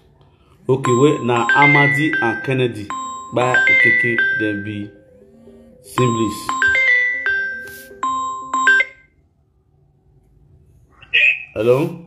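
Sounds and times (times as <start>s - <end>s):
electronic chime melody: 0.8s - 9.1s.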